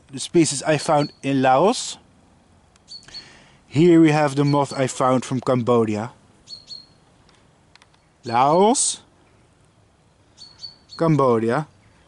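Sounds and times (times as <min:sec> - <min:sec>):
small bird chirping: 0:00.5 - 0:01.6, 0:02.8 - 0:03.5, 0:04.2 - 0:05.1, 0:06.4 - 0:07.1, 0:10.1 - 0:12.0.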